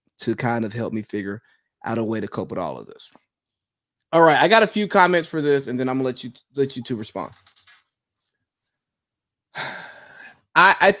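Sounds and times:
man breathing: 9.6s - 10.5s.

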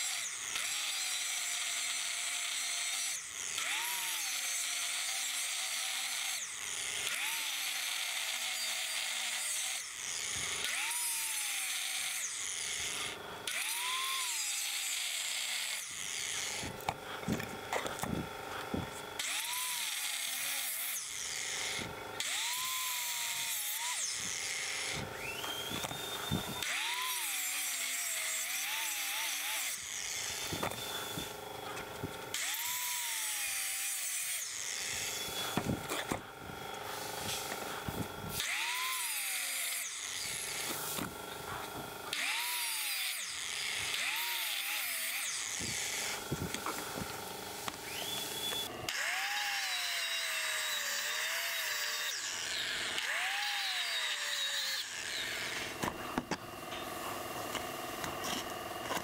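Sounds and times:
angle grinder cutting steel: 0.0s - 59.0s.

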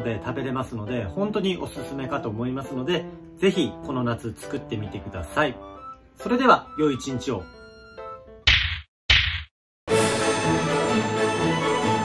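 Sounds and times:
music: 0.0s - 8.4s, 9.9s - 12.0s
sharp slap-like hits: 8.5s - 9.6s.

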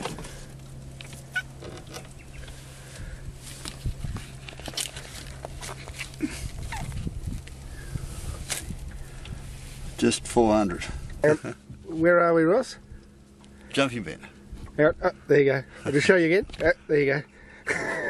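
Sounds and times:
fish handling knocks and rustles: 0.0s - 2.2s
steady low hum: 0.0s - 18.0s
short squeaks: 1.2s - 2.2s.

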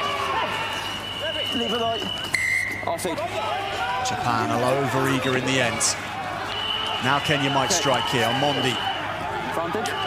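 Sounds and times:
voices from pitch and stands: 0.0s - 10.0s
referee's whistle blast: 0.8s - 3.0s.

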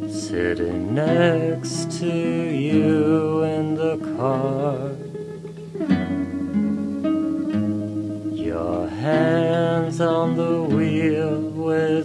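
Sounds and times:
guitar strumming chords: 0.0s - 12.0s.

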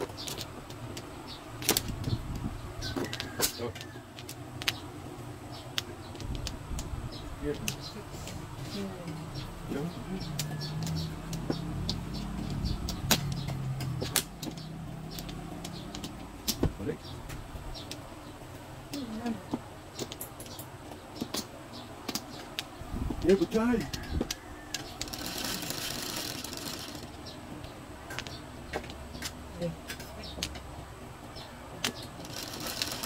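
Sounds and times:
mahjong tiles clicking: 24.7s - 27.2s, 31.8s - 33.0s.

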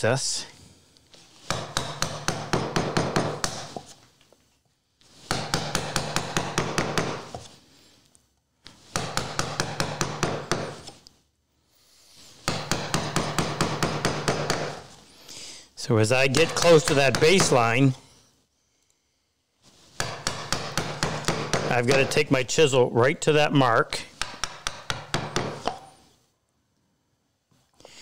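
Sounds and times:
mallet tapping chisel: 1.5s - 3.9s, 16.3s - 17.6s, 20.0s - 22.3s, 24.1s - 25.9s.

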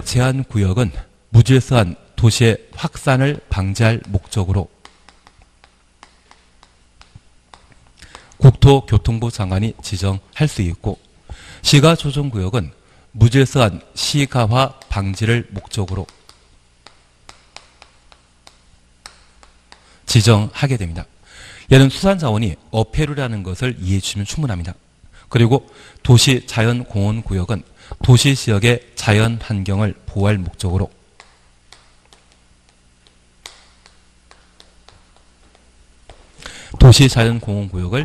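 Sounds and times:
low steady hum: 0.0s - 38.0s
chalk tapping on blackboard: 3.8s - 8.3s, 14.7s - 20.1s, 31.2s - 36.4s.

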